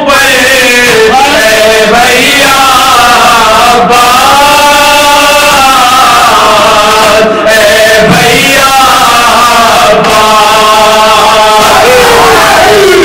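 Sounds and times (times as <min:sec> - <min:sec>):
men chanting a lament: 0:00.0 - 0:13.0.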